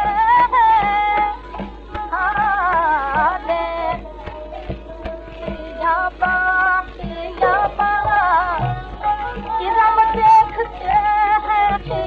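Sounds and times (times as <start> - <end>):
classical vocal melody of long notes: 0.0 - 12.0
light drum strokes: 0.0 - 12.0.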